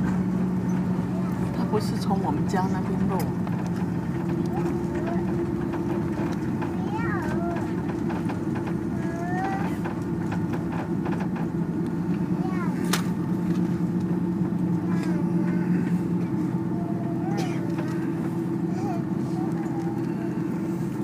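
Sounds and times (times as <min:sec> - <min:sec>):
low hum of engines and airflow: 0:00.0 - 0:21.0.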